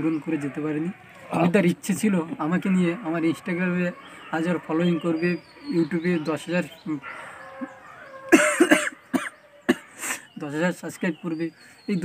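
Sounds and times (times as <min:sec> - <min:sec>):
man sobbing: 0:08.3 - 0:10.4.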